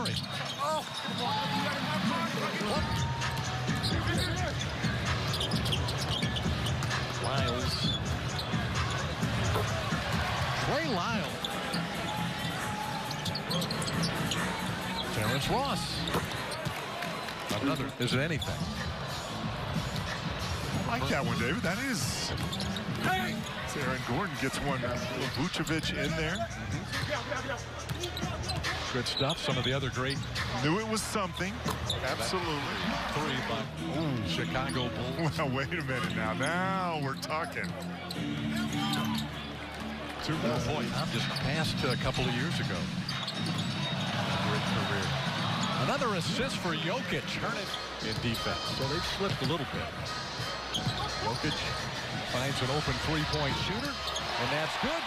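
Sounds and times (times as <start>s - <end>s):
sneaker squeaks: 0.0s - 2.1s, 2.9s - 9.8s, 10.7s - 21.6s, 22.2s - 32.8s, 34.2s - 35.1s, 36.0s - 42.3s, 42.9s - 55.0s
arena crowd noise: 0.0s - 55.0s.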